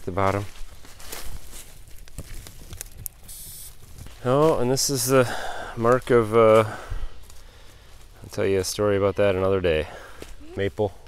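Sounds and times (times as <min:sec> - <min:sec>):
dry leaves crackling underfoot: 0:00.0 - 0:05.0.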